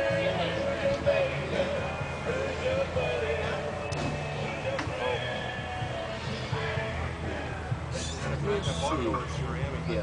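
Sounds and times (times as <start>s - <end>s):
people talking: 0.0s - 1.8s, 8.0s - 10.0s
background music with singing: 0.0s - 10.0s.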